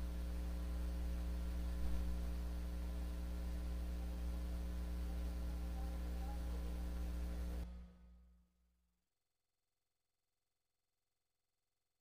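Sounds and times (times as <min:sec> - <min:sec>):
low electrical hum: 0:00.0 - 0:08.3.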